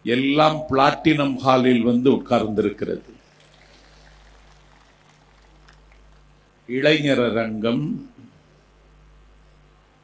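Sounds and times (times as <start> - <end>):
low electrical hum: 0.0 - 10.0
soft background noise: 0.0 - 10.0.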